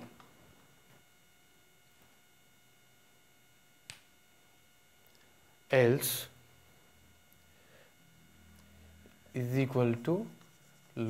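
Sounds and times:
faint steady whine: 0.0s - 11.0s.

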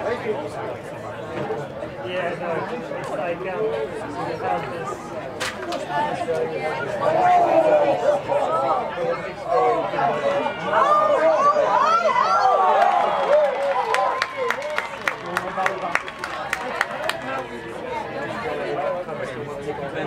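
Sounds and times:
crowd talking and calling: 0.0s - 20.0s
sharp claps: 12.8s - 17.5s.

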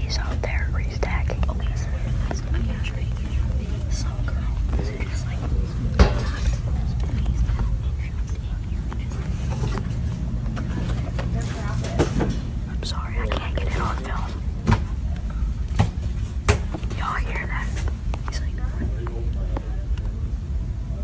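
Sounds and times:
person whispering: 0.0s - 9.8s, 12.7s - 14.4s, 16.9s - 19.2s.

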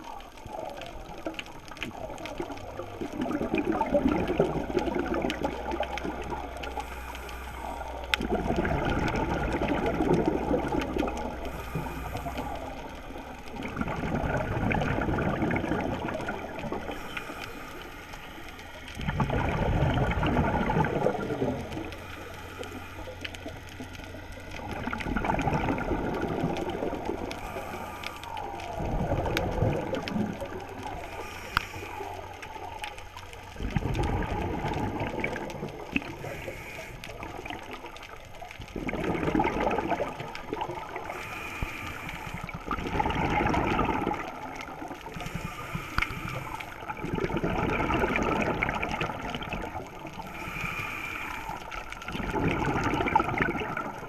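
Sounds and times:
bubbling underwater exhalation: 0.0s - 17.3s, 18.9s - 22.1s, 22.8s - 32.5s, 33.1s - 50.9s, 51.5s - 54.0s.

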